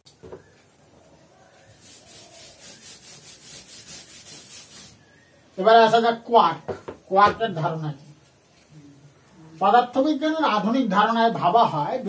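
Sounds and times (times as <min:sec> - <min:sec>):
eraser scrubbing a chalkboard: 0:01.6 - 0:05.0.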